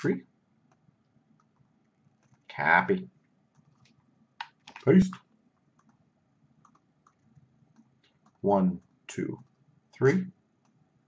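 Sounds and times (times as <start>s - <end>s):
faint computer clicks: 3.5s - 6.0s, 6.6s - 9.6s
person speaking: 4.7s - 5.2s.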